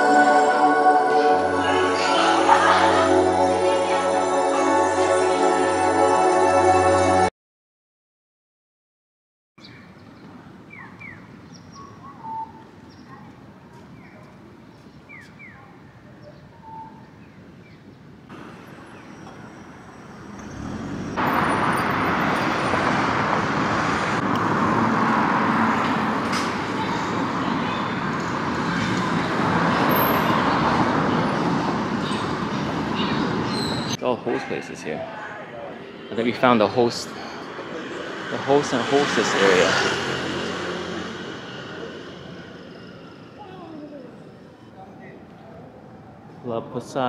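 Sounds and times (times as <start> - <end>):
road traffic passing: 0.0 - 7.3, 17.4 - 47.0.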